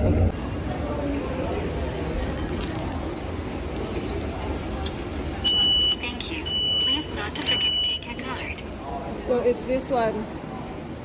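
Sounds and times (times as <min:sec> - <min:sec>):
vending machine beeping: 0:05.4 - 0:08.3.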